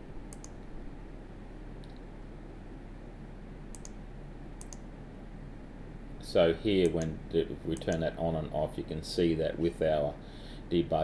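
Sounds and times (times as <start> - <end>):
low background hum: 0.0 - 11.0
computer mouse clicks: 0.3 - 0.7, 3.7 - 4.0, 4.6 - 4.9.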